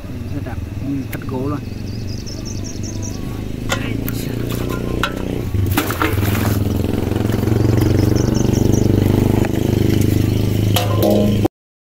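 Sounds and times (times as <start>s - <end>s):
engine running: 0.0s - 11.5s.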